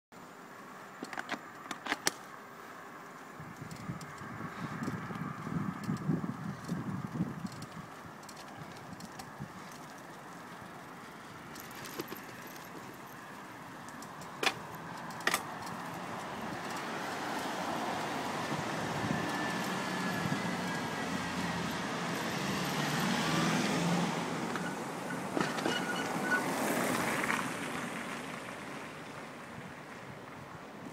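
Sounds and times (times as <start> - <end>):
street traffic noise: 0.1 - 30.9.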